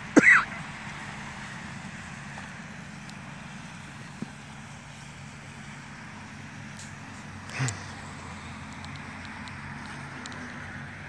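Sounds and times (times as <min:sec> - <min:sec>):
water spraying from sprinkler: 0:00.0 - 0:11.0.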